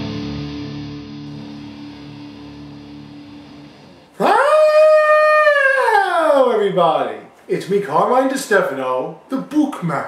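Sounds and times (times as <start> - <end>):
guitar music: 0.0 - 4.2
man howling: 4.2 - 6.7.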